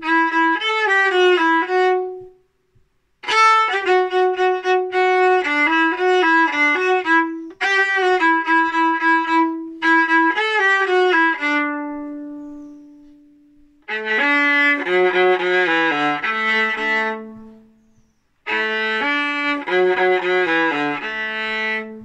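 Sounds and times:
solo viola melody: 0.0s - 22.0s.

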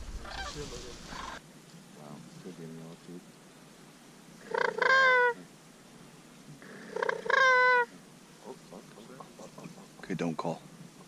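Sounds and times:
crane mouth call: 4.4s - 5.5s, 6.5s - 10.1s.

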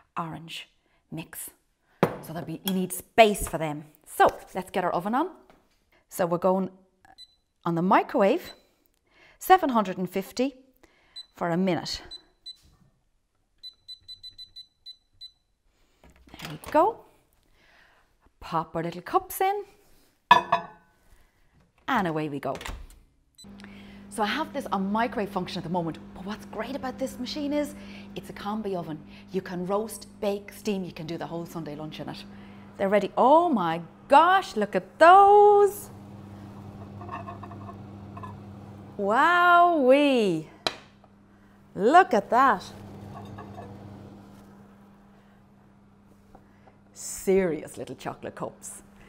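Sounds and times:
microwave control panel beeping: 13.6s - 15.4s
ceramic cups clinking: 20.3s - 20.8s, 36.7s - 38.5s, 43.0s - 43.9s
microwave oven hum: 23.4s - 49.0s.

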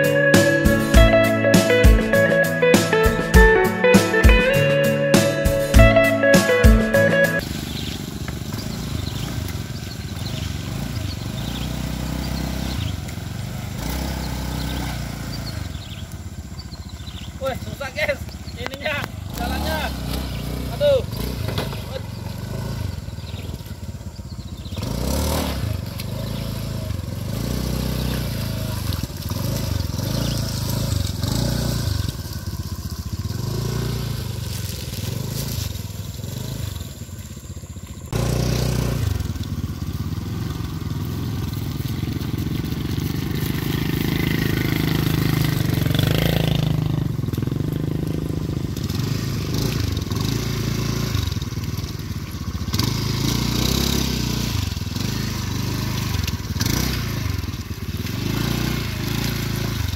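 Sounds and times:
motorcycle engines in mud: 0.0s - 59.9s.

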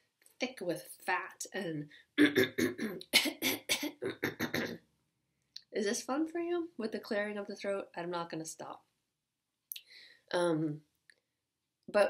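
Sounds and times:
woman clearing her throat: 2.2s - 4.8s.

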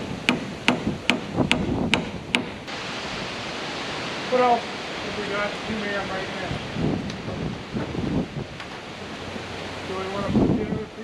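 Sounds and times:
hammer blows on wood: 0.0s - 2.6s
wind noise on microphone: 0.0s - 4.3s, 5.0s - 11.0s.

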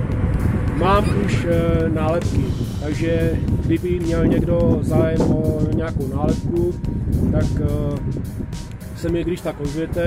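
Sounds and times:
low rumble: 0.0s - 9.3s
music with steady beat: 0.0s - 10.0s
man speaking: 0.8s - 6.8s, 7.4s - 8.1s, 9.0s - 10.0s.

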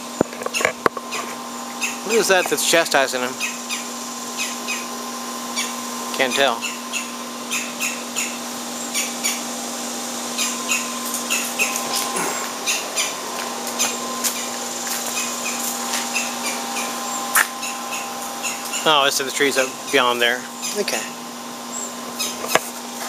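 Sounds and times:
steady low hum: 0.0s - 23.0s
bird scolding calls: 0.5s - 2.2s, 3.3s - 9.6s, 10.3s - 19.1s, 19.7s - 22.5s.

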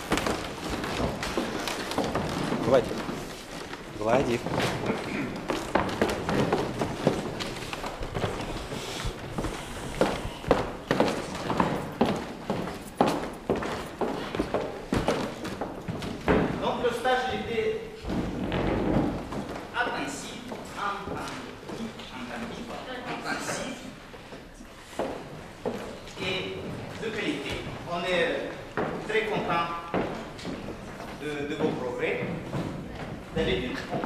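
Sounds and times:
voices in a hall: 0.0s - 34.0s.

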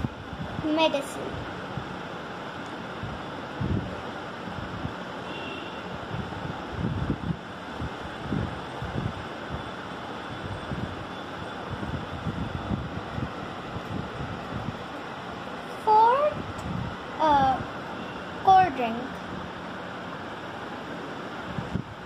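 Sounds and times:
low wind rumbles on microphone: 0.0s - 5.2s, 5.9s - 17.8s, 21.1s - 22.0s
steady background hiss: 0.0s - 22.0s.

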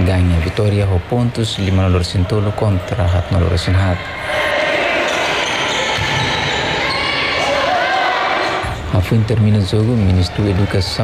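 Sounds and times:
people calling out in gym: 2.3s - 8.7s.

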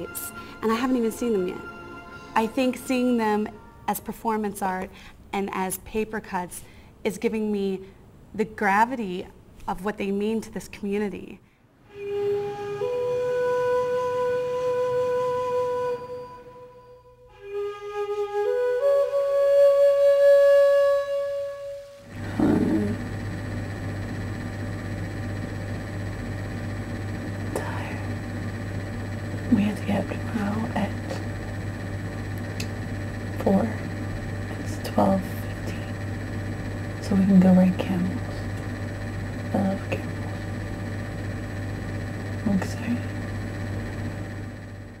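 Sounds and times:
steady low hum: 0.0s - 45.0s
flute note: 11.8s - 23.0s.

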